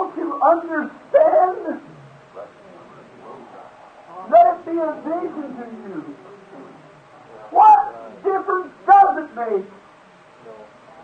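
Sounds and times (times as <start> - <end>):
man preaching: 0.0 - 1.9, 4.2 - 6.2, 7.5 - 9.8
faint background murmur: 0.0 - 11.0
recording hiss: 0.0 - 11.0.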